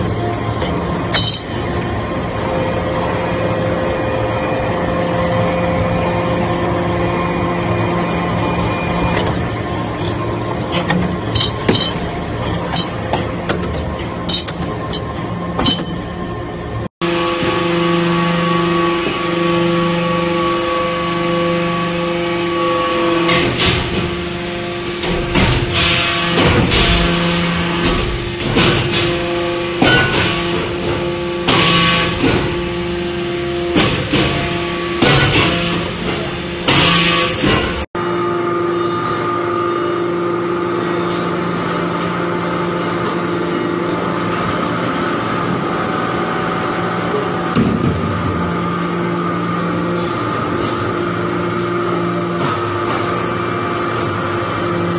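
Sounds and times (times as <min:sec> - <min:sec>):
hydraulic pump humming: 0:00.0 - 0:54.9.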